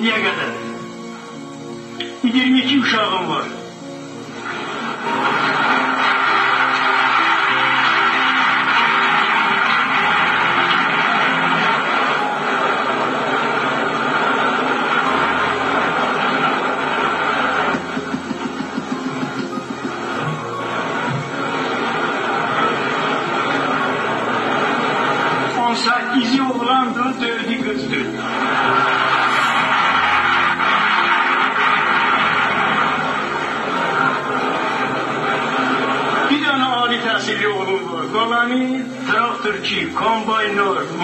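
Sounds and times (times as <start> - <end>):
background music long held notes: 0.0 - 41.0.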